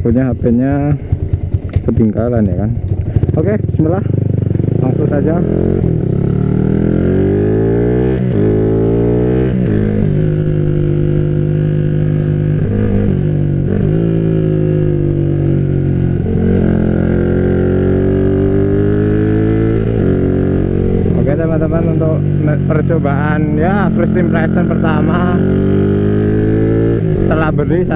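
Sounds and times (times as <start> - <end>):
motorcycle engine accelerating: 0.0 - 27.9.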